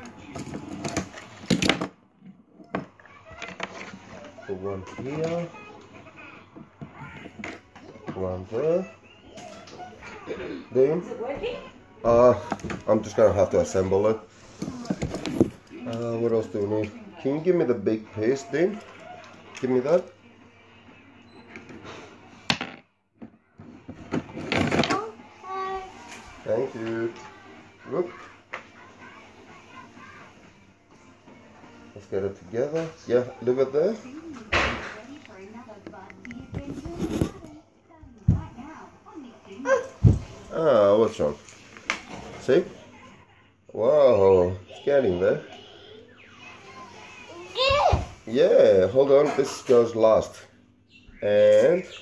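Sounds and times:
plastic parts rustling and knocking: 0:00.0 - 0:05.5, 0:12.3 - 0:13.8, 0:14.5 - 0:16.5, 0:21.6 - 0:25.1.

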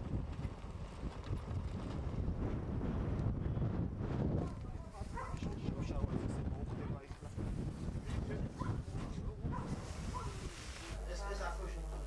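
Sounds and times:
wind rumble on microphone: 0:00.0 - 0:11.1
dog barking: 0:04.4 - 0:05.6, 0:08.6 - 0:08.8, 0:09.5 - 0:10.4.

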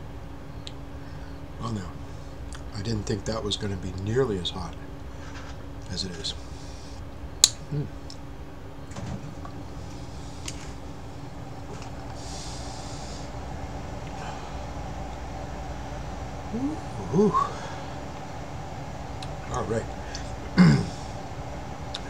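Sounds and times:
steady low hum: 0:00.0 - 0:22.0
man humming mm: 0:07.6 - 0:08.0, 0:16.5 - 0:17.8, 0:20.5 - 0:21.2
man exhaling breathily: 0:14.2 - 0:14.6, 0:16.5 - 0:18.0.

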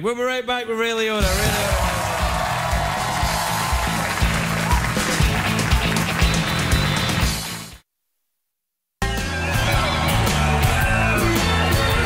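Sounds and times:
music with bass and drum beat: 0:01.2 - 0:07.7, 0:09.0 - 0:12.0
audience applause: 0:01.5 - 0:07.7, 0:09.3 - 0:12.0.

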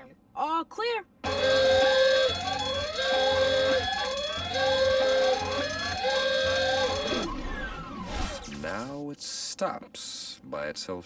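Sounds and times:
alarm siren whooping: 0:01.2 - 0:08.5.

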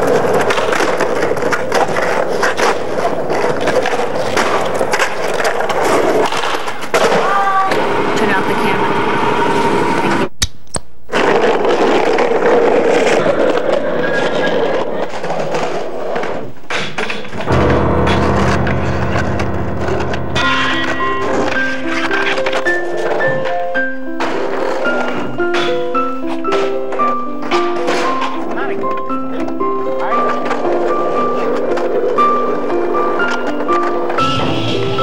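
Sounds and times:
skateboard wheels rolling on concrete: 0:00.0 - 0:08.2, 0:11.1 - 0:35.0
low steady drone: 0:17.5 - 0:21.8
simple piano melody: 0:17.5 - 0:35.0.

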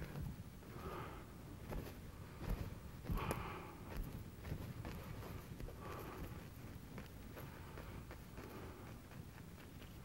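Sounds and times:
brush dabbing and scrubbing canvas: 0:01.6 - 0:10.0.

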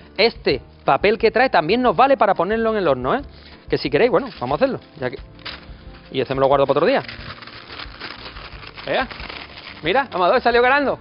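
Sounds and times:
baking paper rustling and crackling: 0:04.2 - 0:10.6.

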